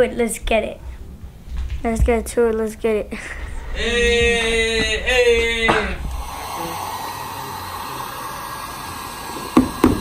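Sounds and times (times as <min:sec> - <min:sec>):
heat gun blowing hot air: 0:05.7 - 0:10.0
sharp knocks: 0:09.6 - 0:10.0.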